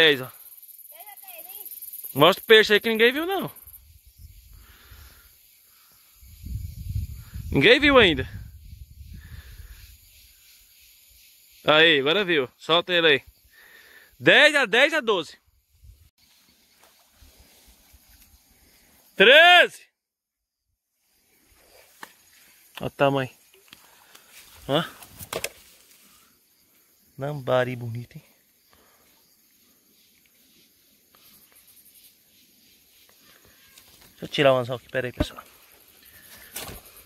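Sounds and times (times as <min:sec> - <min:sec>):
thin steady hiss: 0:00.0 - 0:19.7, 0:25.5 - 0:37.0
faint outdoor background: 0:00.0 - 0:37.0.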